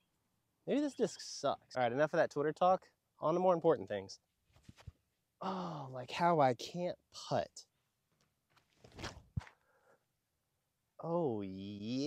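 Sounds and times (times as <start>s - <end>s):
shoe scuff on concrete: 8.5s - 9.5s.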